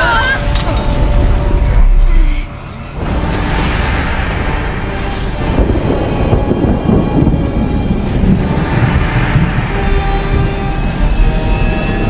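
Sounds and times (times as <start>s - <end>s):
deep pulsing rumble: 0.0s - 12.0s
dramatic music: 0.0s - 12.0s
steady rain: 2.6s - 12.0s.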